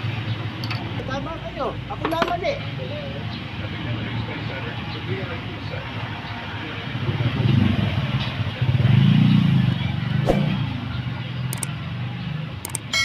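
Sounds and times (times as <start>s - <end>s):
light metallic tool clicks: 11.5s - 11.7s, 12.6s - 12.9s.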